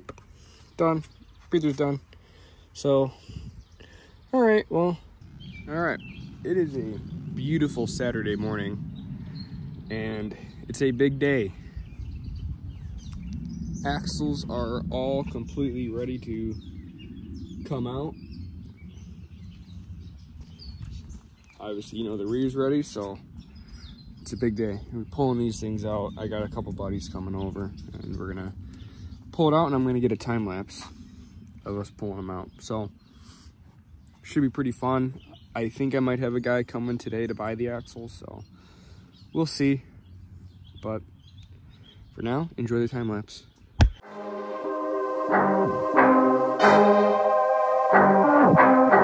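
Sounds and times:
birds chirping faintly: 0.0 - 46.0
steady low rumble: 1.8 - 33.0.

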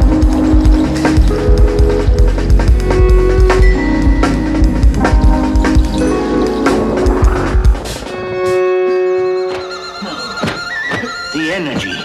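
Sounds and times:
drums: 0.0 - 8.6
held synth chord: 0.0 - 10.4.

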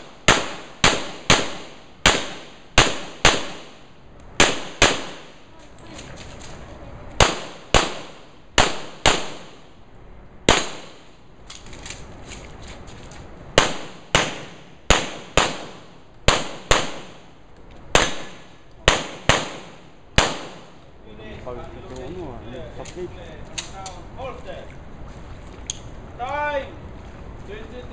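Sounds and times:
handgun shots with echo: 7.2 - 9.6, 10.5 - 11.0, 13.6 - 17.2, 18.0 - 20.7.

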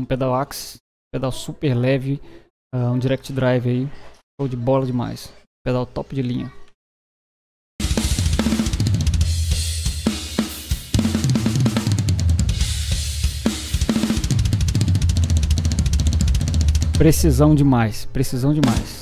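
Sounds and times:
snare and tom hits: 7.8 - 17.1, 18.6 - 19.0
double bass drum roll: 7.8 - 17.4.

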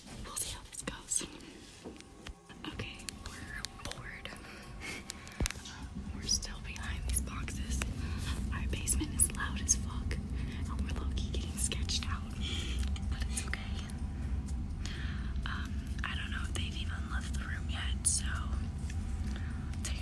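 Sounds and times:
low rumble: 0.0 - 20.0
girl whispering: 2.5 - 4.8.

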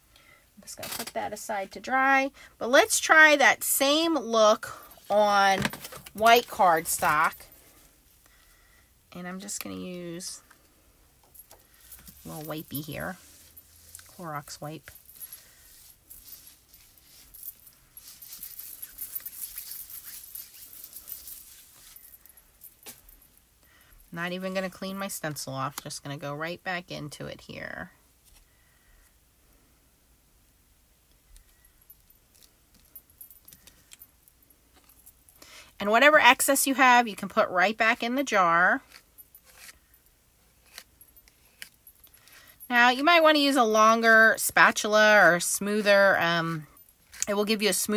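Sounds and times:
wipe rubbing over plastic: 12.1 - 17.4.

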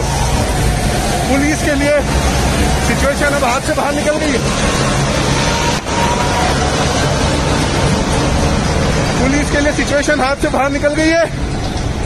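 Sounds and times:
diesel tractor engines passing: 0.0 - 12.0
road and traffic noise: 0.0 - 12.0.

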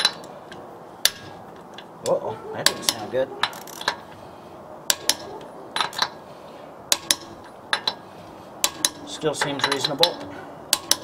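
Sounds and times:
torque wrench clicks: 3.4 - 4.0.

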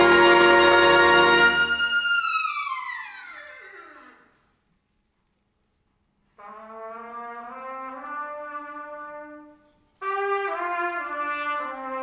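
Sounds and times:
trumpet high note falling: 0.0 - 3.5.

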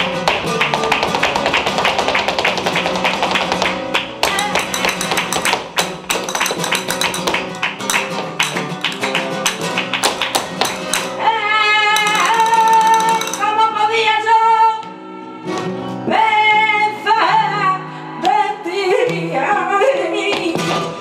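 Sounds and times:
hand-clapping: 0.0 - 11.2, 12.0 - 13.5
footwork striking a wooden stage: 0.0 - 13.6
flamenco guitar: 0.0 - 21.0.

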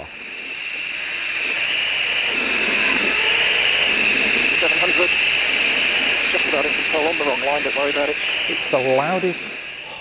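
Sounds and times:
jet engines on full reheat: 0.0 - 10.0.

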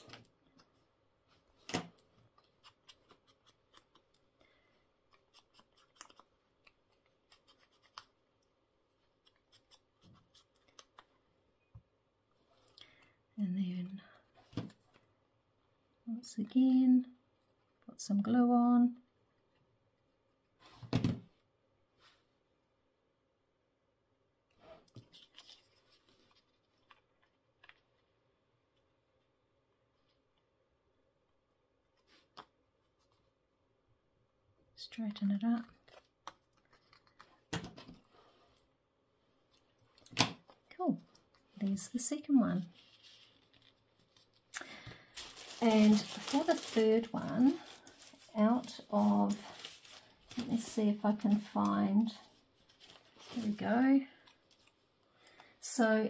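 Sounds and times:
scissors snipping paper: 2.4 - 4.3, 5.1 - 8.2, 9.2 - 11.1
paper pieces handled: 24.9 - 27.8, 42.7 - 53.6.

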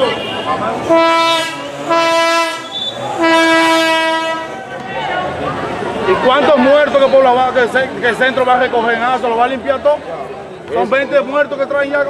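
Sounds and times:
horn blasts: 0.0 - 4.7
crowd voices: 0.0 - 12.0.

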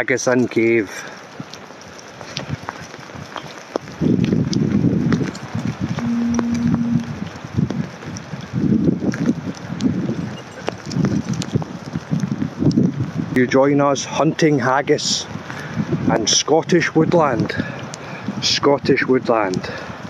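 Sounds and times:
wind rumble on microphone: 1.3 - 20.0
low steady tone: 6.0 - 7.2.

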